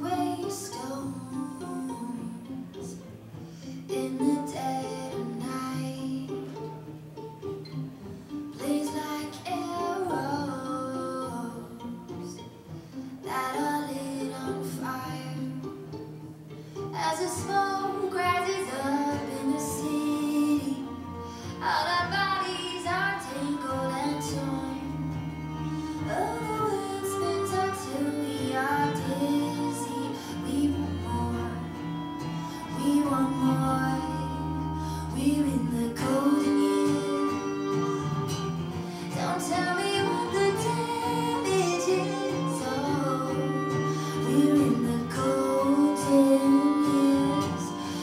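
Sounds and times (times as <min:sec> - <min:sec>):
woman singing: 0:00.0 - 0:03.1, 0:03.8 - 0:06.8, 0:08.5 - 0:12.6, 0:13.2 - 0:16.0, 0:16.8 - 0:48.0
acoustic guitar: 0:00.0 - 0:48.0
cello: 0:00.0 - 0:48.0
violin: 0:00.0 - 0:48.0.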